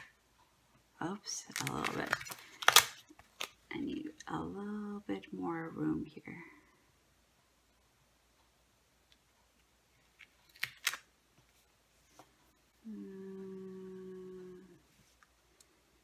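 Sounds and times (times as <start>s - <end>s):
person humming: 12.8s - 15.0s.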